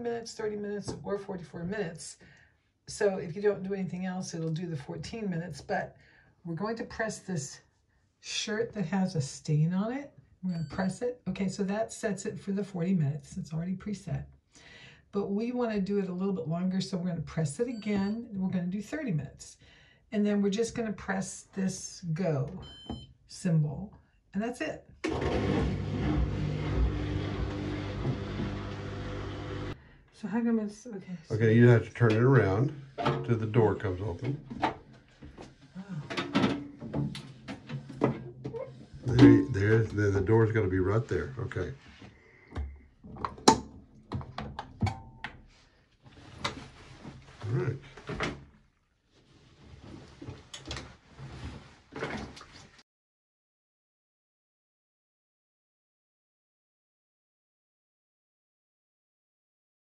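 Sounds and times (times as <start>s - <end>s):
washing machine running: 25.1s - 29.8s
washing machine drum clicks: 44.6s - 45.4s
laundry rustling: 46.0s - 52.8s.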